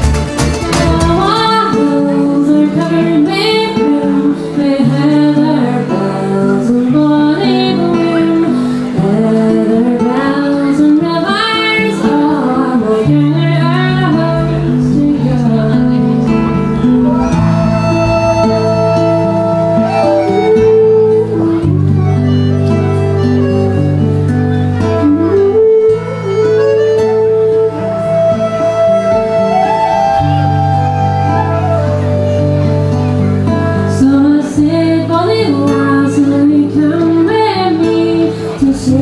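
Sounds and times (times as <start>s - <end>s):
accordion: 0.0s - 3.4s, 13.0s - 34.0s
acoustic guitar: 0.0s - 39.0s
flute: 0.0s - 39.0s
low held notes: 0.0s - 39.0s
woman singing folk song: 0.6s - 17.6s, 33.3s - 39.0s
fiddles: 7.4s - 39.0s
sustained low notes: 13.8s - 22.6s.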